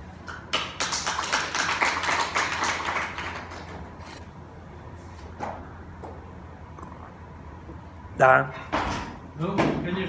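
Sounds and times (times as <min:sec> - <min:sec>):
audience applauding: 0:00.5 - 0:03.8.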